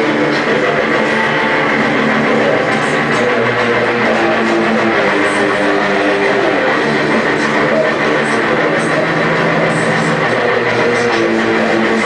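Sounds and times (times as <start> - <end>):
distorted electric guitar: 0.0 - 12.0
heavy metal music: 0.0 - 12.0.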